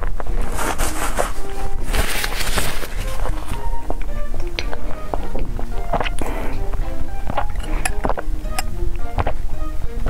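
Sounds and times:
background music of short notes: 0.4 - 10.0.

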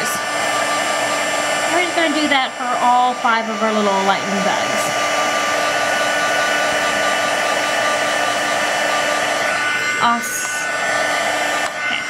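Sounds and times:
heat gun blowing: 0.0 - 12.0.

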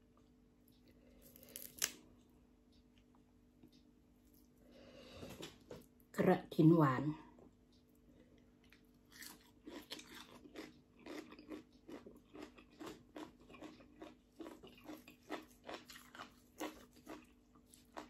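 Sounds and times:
chewing crunchy vegetables: 8.4 - 18.0.

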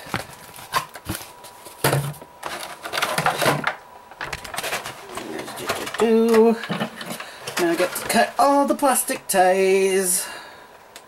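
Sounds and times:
plastic and cardboard handling: 0.0 - 9.3
person murmuring: 5.0 - 6.7.

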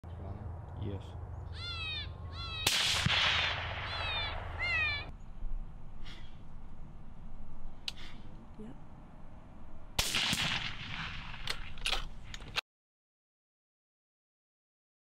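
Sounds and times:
high downward-sliding yelps: 1.6 - 5.1
gunshot with rolling echo: 2.6 - 4.6, 10.0 - 11.7.

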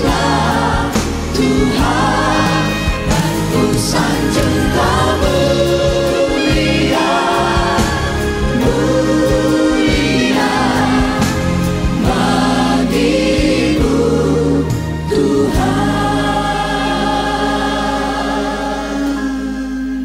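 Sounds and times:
choir singing gospel song: 0.0 - 20.0.

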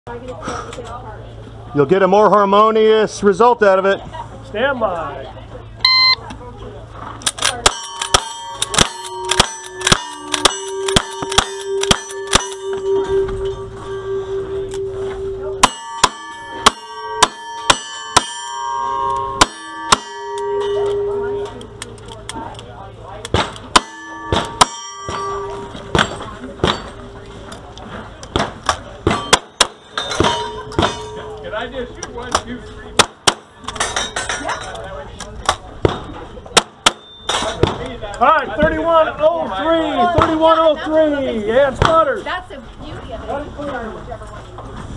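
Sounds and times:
shot timer beep: 5.8 - 6.3
steel targets clanging: 7.2 - 34.9, 35.9 - 37.9.

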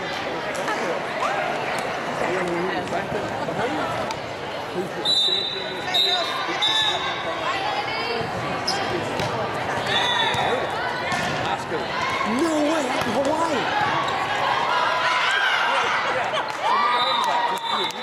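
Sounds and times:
referee whistle blasts: 5.0 - 7.1, 16.9 - 18.0
volleyballs hit and bouncing: 8.2 - 14.2.

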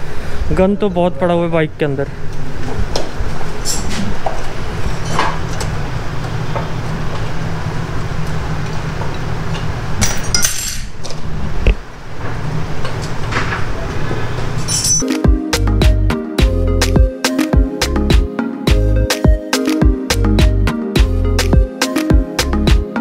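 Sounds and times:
wrench clinking on metal: 14.7 - 15.1.

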